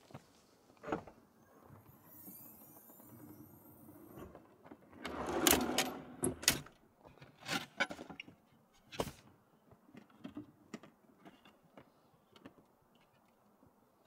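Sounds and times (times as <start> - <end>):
drawer rolling on ball-bearing slides: 2.2 - 6.6.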